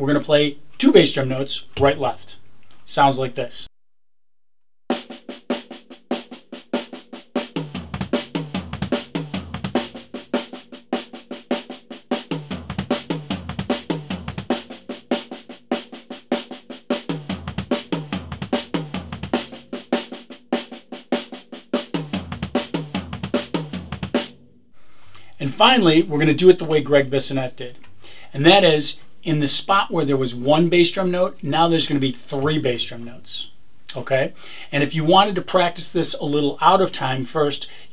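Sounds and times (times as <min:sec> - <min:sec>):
tom drums: 0:01.1 - 0:02.4, 0:04.9 - 0:24.5
snare drum triplets: 0:04.9 - 0:24.4
double pedal bass drum: 0:07.5 - 0:10.3, 0:12.3 - 0:14.8, 0:17.0 - 0:19.7, 0:21.9 - 0:24.3.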